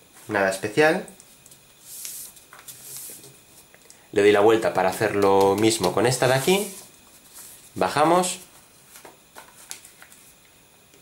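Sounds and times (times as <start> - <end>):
paper rustling and crinkling: 5.0 - 7.8, 8.4 - 10.4.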